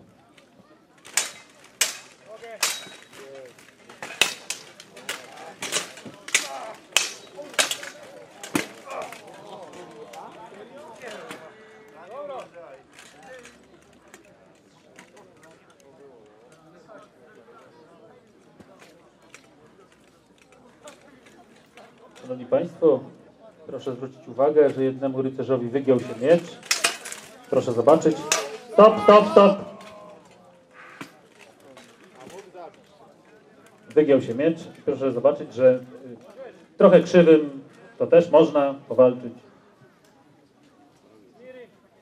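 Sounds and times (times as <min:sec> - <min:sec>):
faint crowd chatter: 0:00.0 - 0:42.0
swords clashing on armour: 0:01.0 - 0:09.4, 0:26.0 - 0:30.3.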